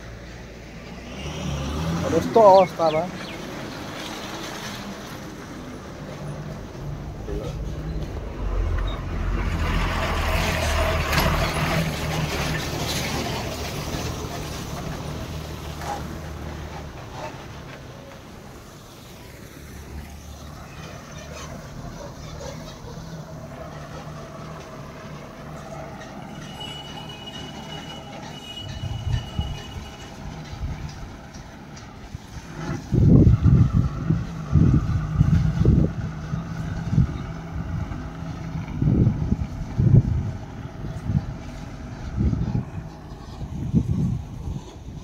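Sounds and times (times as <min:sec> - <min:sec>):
vehicle engine humming: 0:00.0 - 0:45.0.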